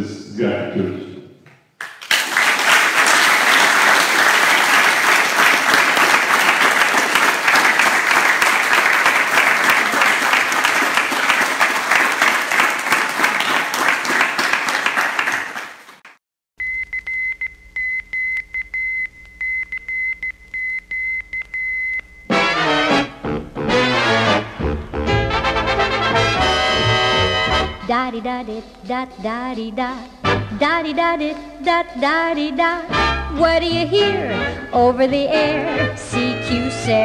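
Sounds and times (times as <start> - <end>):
audience applause: 1.8 - 16.1
morse code beeping tone: 16.6 - 22.5.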